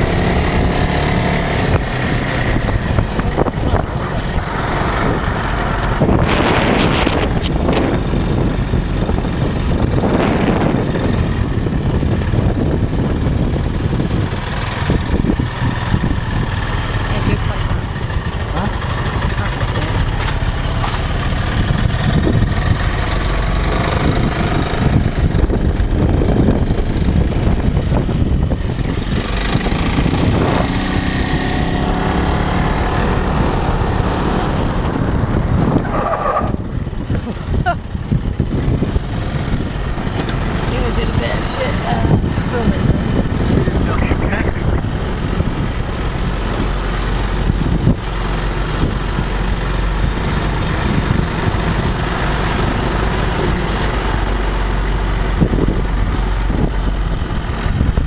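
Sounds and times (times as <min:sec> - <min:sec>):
dune buggy engine: 0:00.0 - 0:58.0
road noise: 0:00.0 - 0:58.0.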